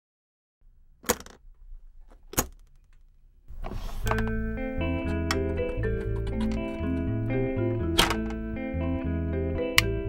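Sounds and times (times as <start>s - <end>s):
case latches snapping open: 2.1s - 2.9s, 7.9s - 8.4s.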